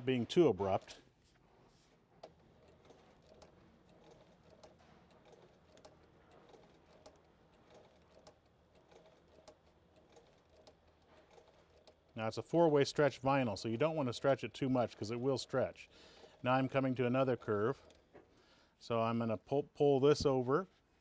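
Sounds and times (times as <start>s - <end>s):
sewing machine stitching: 2.1s - 12.8s, 14.8s - 18.4s.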